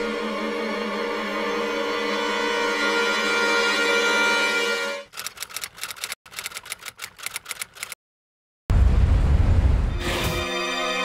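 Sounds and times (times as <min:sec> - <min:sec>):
rapid typewriter-like clicking: 0:05.1 - 0:08.0.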